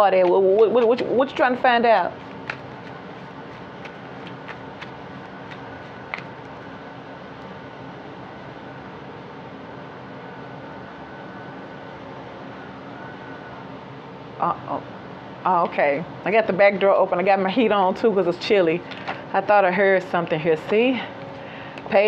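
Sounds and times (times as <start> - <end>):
mechanical hum and hiss: 0.0 - 22.0.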